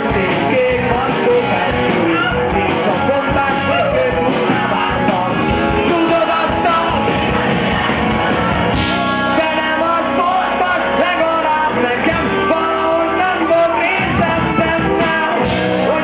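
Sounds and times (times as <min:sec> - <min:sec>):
bass guitar: 0:00.0 - 0:16.0
drum kit: 0:00.0 - 0:16.0
electric guitars: 0:00.0 - 0:16.0
person singing into microphone: 0:00.0 - 0:16.0.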